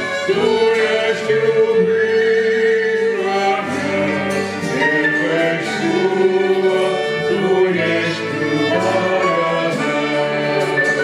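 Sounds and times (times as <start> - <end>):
flute: 0.0 - 11.0
violin: 0.0 - 11.0
vocal group singing: 0.0 - 11.0.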